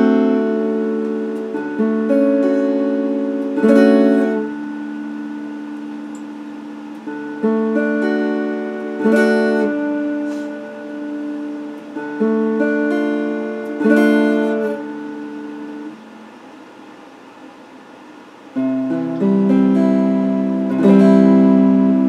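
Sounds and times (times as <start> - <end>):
electric guitar chords ringing: 0.0 - 16.2, 18.5 - 22.0.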